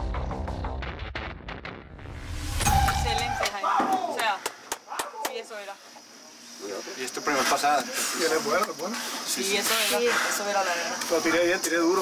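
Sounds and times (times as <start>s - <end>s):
people talking: 2.9s - 4.4s.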